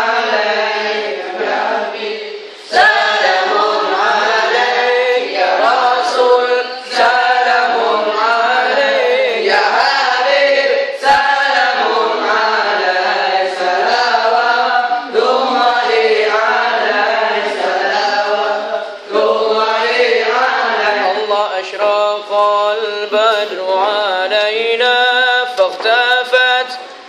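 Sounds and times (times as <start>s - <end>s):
young men chanting in unison: 0.0s - 23.5s.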